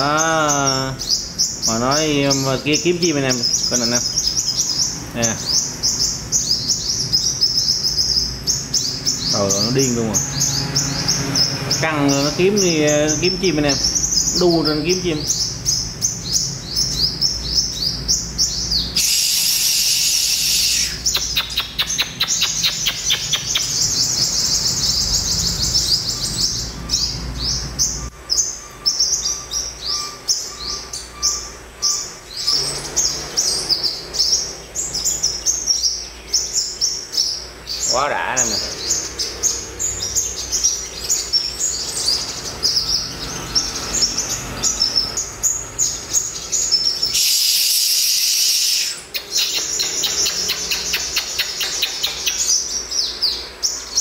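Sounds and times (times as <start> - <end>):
birds chirping and twittering: 0.0 - 54.0.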